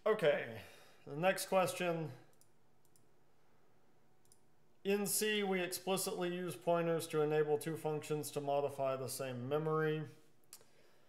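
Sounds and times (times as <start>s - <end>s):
man speaking: 0.0s - 2.3s, 4.8s - 10.3s.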